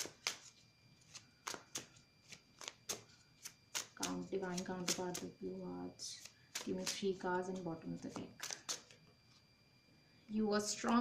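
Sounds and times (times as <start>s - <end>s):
cards being shuffled: 0.0s - 5.4s, 6.0s - 9.0s.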